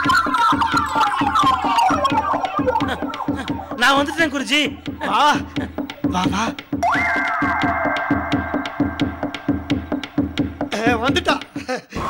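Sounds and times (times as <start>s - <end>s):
steady percussion beat: 0.0s - 11.7s
buzzy synthesizer tone: 6.8s - 10.3s.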